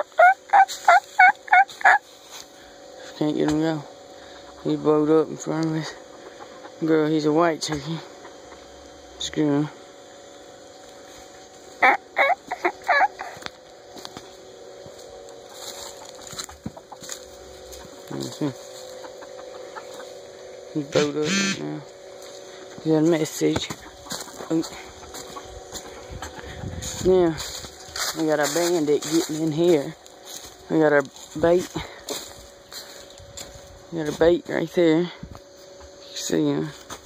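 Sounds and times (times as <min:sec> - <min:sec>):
turkey calling: 0:00.0 - 0:02.0, 0:05.9 - 0:06.8, 0:11.7 - 0:13.4, 0:18.9 - 0:20.2, 0:20.9 - 0:21.6, 0:23.6 - 0:26.7.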